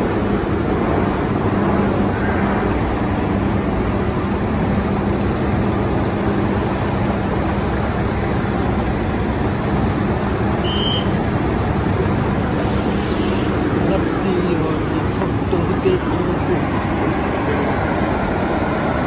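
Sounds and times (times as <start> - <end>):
diesel tractor engines droning: 0.0 - 19.0.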